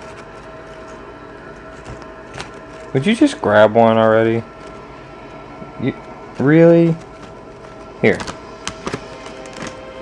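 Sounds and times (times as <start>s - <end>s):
chip bag crinkling: 0.0s - 3.7s.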